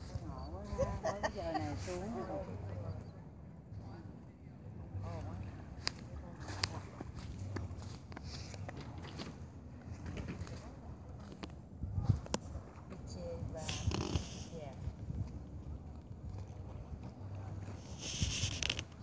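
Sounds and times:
low outdoor rumble: 0:00.0 - 0:19.0.

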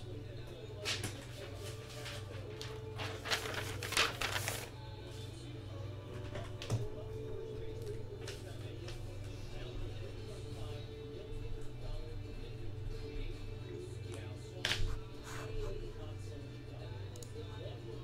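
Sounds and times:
quiet background music: 0:00.0 - 0:18.0
steady low hum: 0:00.0 - 0:18.0.

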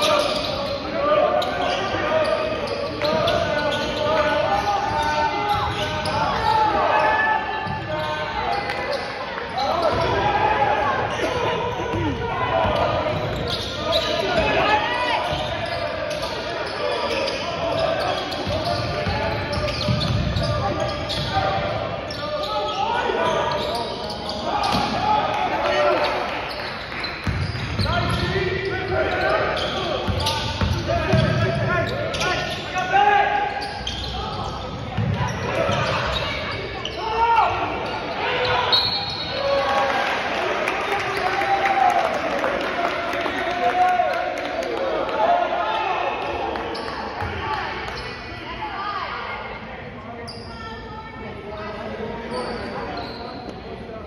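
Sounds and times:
chatter of spectators: 0:00.0 - 0:54.0
referee's whistle: 0:37.8 - 0:39.5.

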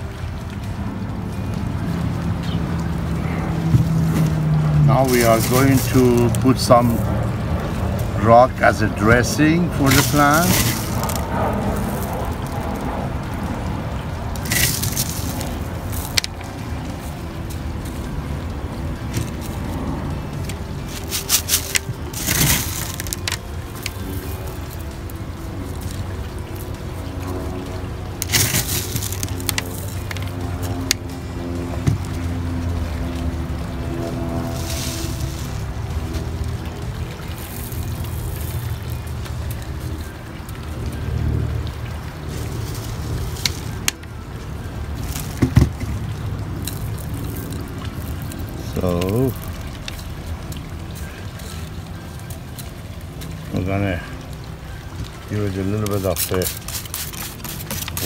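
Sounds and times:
background music: 0:00.0 - 0:58.0
small rocks clattering: 0:03.6 - 0:07.1, 0:08.0 - 0:12.9, 0:14.3 - 0:18.1, 0:19.0 - 0:26.0, 0:28.2 - 0:31.1, 0:37.3 - 0:40.1, 0:44.9 - 0:51.6.

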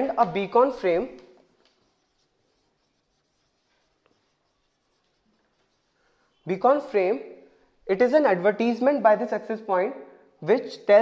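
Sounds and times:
marker scratching on whiteboard: 0:00.0 - 0:06.9.

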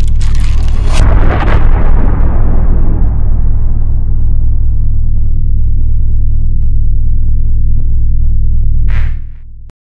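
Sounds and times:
deep low drone: 0:00.0 - 0:09.7.

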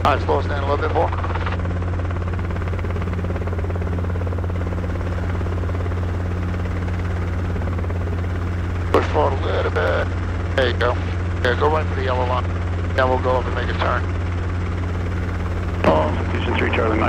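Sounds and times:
helicopter engine and rotors drone: 0:00.0 - 0:17.0.

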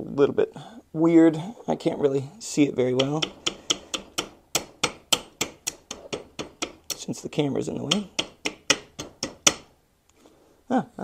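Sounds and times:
small hammer tapping metal: 0:03.0 - 0:07.1, 0:07.8 - 0:09.7.

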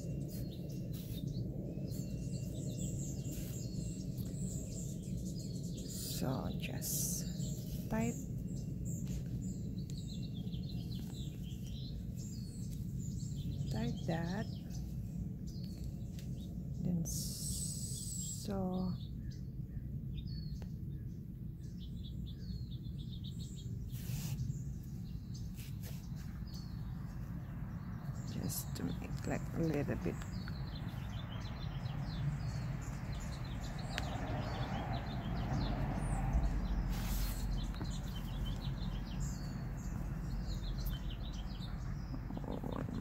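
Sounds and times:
birds chirping faintly: 0:00.0 - 0:43.0.

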